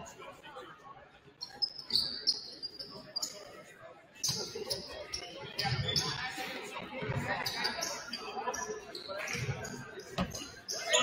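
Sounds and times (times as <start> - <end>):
sneakers squeaking: 1.4 - 3.5, 4.2 - 6.4, 7.0 - 11.0.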